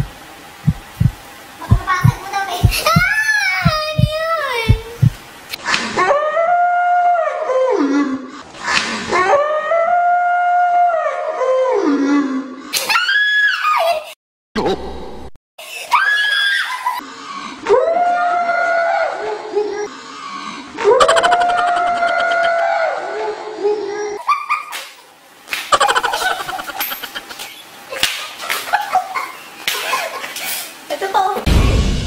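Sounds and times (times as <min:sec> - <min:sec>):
woman screaming: 0:20.9 - 0:23.0.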